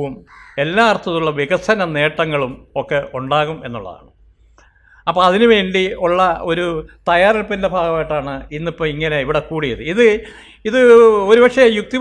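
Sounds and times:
man talking into a microphone: 0:00.0 - 0:04.1, 0:05.0 - 0:12.0.

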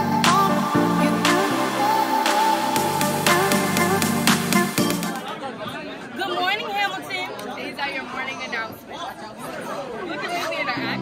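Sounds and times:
background music: 0:00.0 - 0:05.2
crowd chatter: 0:00.0 - 0:11.0.

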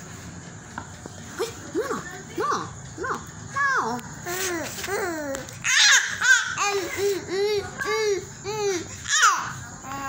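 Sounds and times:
faint background hum: 0:00.0 - 0:10.0
toddler vocal sound: 0:04.2 - 0:10.0.

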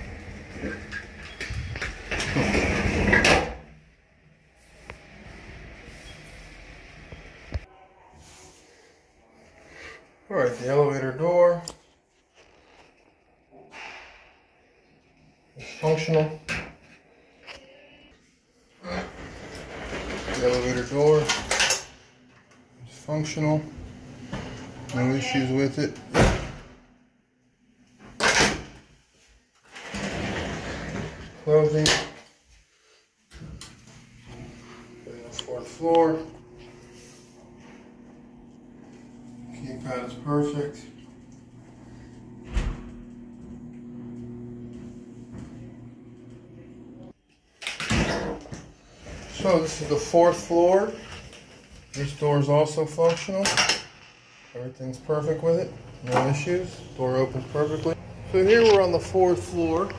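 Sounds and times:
elevator door sliding: 0:00.0 - 0:03.6, 0:18.8 - 0:21.6, 0:23.4 - 0:25.2, 0:29.7 - 0:31.8
door shutting and latching: 0:26.0 - 0:26.8, 0:42.4 - 0:43.1.

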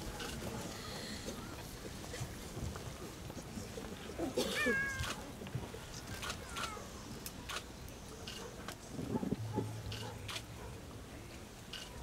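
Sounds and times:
faint background murmur: 0:00.0 - 0:12.0.

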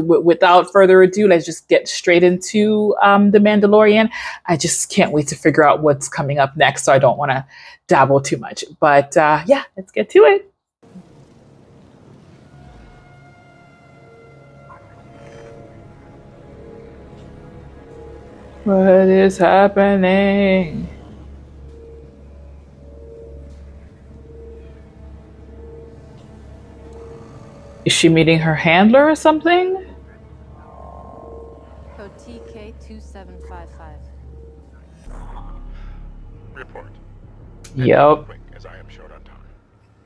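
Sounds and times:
low drone: 0:10.8 - 0:40.0
ominous film score: 0:10.8 - 0:40.0
low steady ambient rumble: 0:15.7 - 0:30.8, 0:31.8 - 0:40.0
droid electronic warble: 0:28.8 - 0:39.7.

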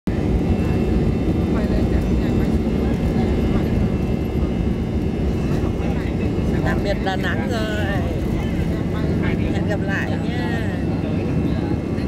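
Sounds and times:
jet engines at takeoff power: 0:00.1 - 0:12.0
runway rumble: 0:00.1 - 0:12.0.

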